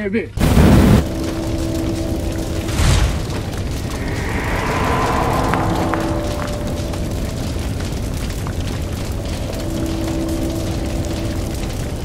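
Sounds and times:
low drone: 0.7 - 12.0
whoosh: 2.7 - 8.0.

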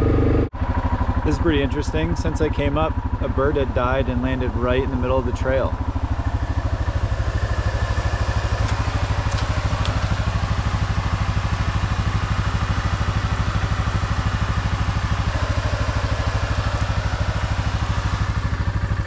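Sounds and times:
atv engine idling: 0.0 - 19.0.

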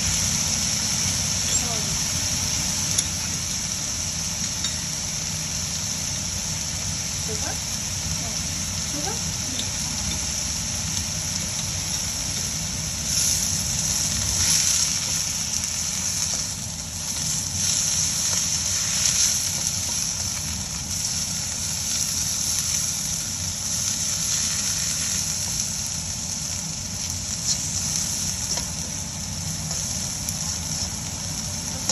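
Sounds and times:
greens sizzling in a wok: 0.0 - 31.9.

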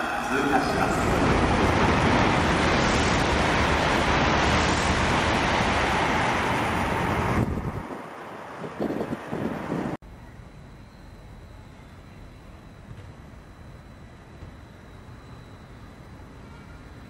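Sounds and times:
train passing at high speed: 0.0 - 10.0
wind gusts on microphone: 0.6 - 10.0.

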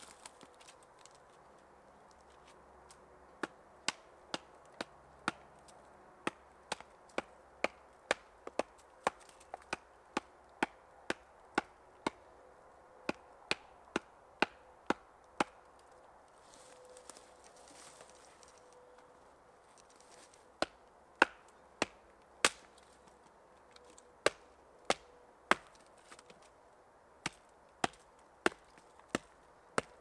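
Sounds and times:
wood chopping strikes: 3.4 - 5.4, 20.6 - 22.9, 24.2 - 26.4, 27.2 - 30.0.

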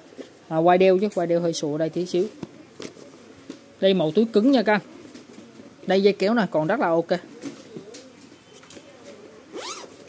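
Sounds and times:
zipper being pulled: 9.5 - 10.0.

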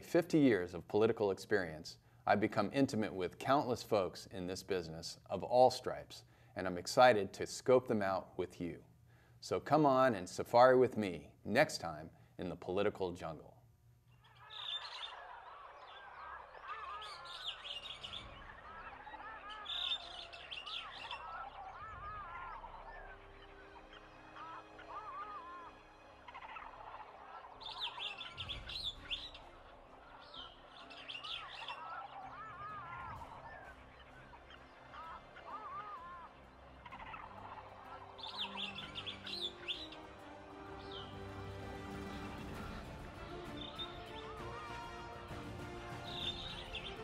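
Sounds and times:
chatter of lower bird calls: 14.1 - 47.0
high bird chirps: 14.1 - 47.0.

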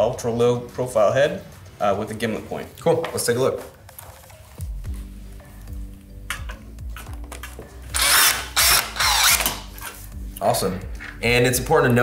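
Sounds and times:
screw driving through metal panel: 7.9 - 9.6
cordless screw gun running: 7.9 - 9.7.

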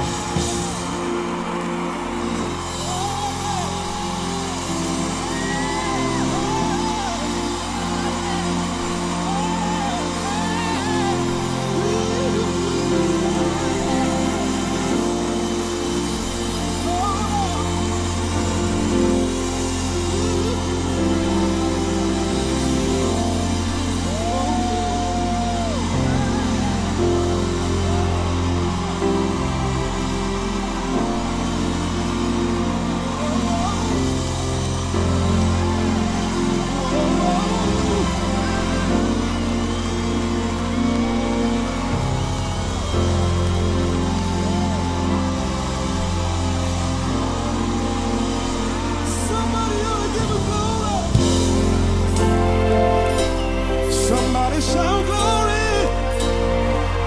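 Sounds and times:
soul band playing: 0.0 - 11.0, 51.1 - 57.0
bass line: 0.0 - 57.0
soul band sustained chords: 0.0 - 57.0.

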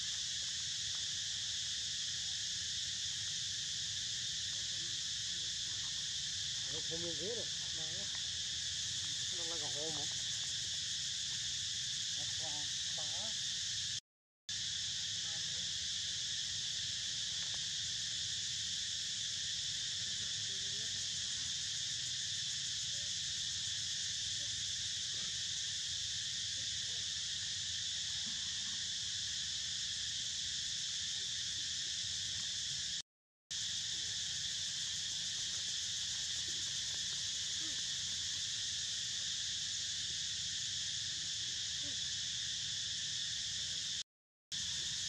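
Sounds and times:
forest insect chorus drone: 0.0 - 45.0.

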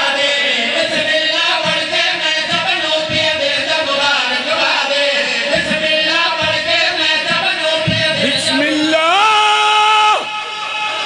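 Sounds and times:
man chanting through loudspeakers: 0.0 - 10.3.

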